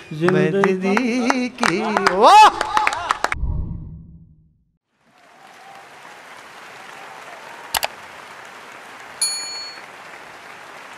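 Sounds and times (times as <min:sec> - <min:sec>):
applause: 0:00.0 - 0:03.4, 0:04.9 - 0:10.9
bell-like notification ding: 0:09.2 - 0:09.8.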